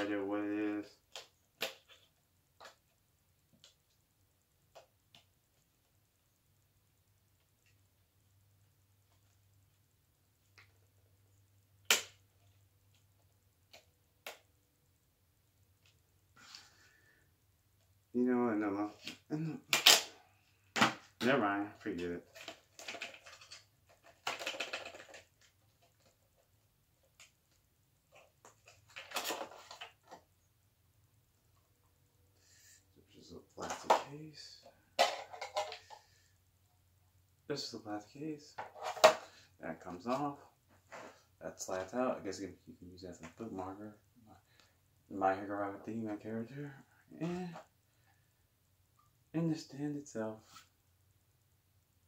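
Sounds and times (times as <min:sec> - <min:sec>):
plastic case being handled: 0:35.0 - 0:36.0.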